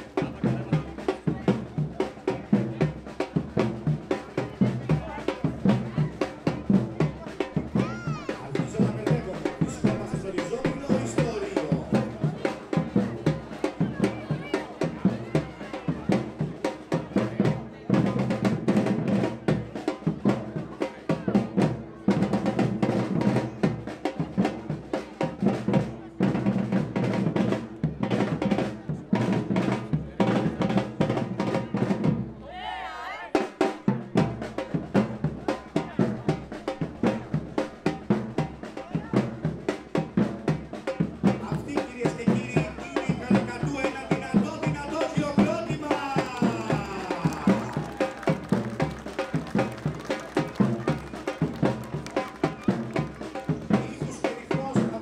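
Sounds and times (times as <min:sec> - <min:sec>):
drummers playing snare and bass drums: 0:00.0 - 0:32.4, 0:33.3 - 0:55.0.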